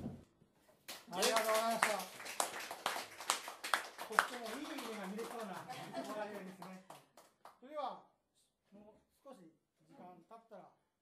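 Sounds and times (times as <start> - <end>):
audience clapping sparsely: 0.8 - 7.7.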